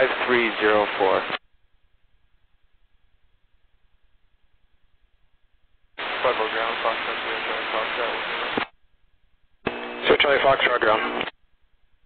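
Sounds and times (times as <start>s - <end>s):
radio hiss: 0.0s - 1.4s, 6.0s - 8.8s, 9.7s - 11.4s
radio voice transmission: 0.0s - 1.4s, 6.0s - 8.7s, 9.7s - 11.3s.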